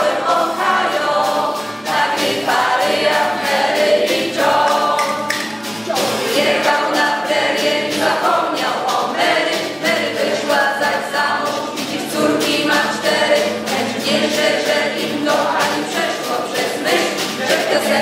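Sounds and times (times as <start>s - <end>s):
choir singing: 0.0s - 18.0s.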